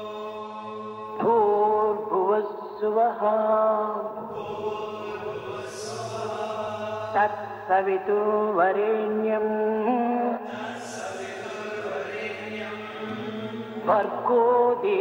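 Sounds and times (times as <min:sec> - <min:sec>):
person chanting: 0:00.0 - 0:15.0
steady drone: 0:04.2 - 0:08.4, 0:10.5 - 0:14.9.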